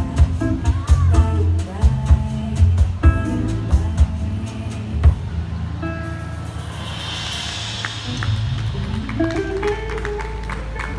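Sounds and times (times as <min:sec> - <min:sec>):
live band playing bossa nova: 0:00.0 - 0:10.9
run of plucked notes: 0:05.8 - 0:10.9.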